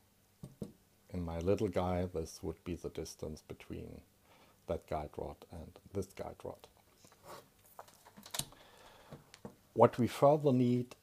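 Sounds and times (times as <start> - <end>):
paper rustling: 7.0 - 8.4.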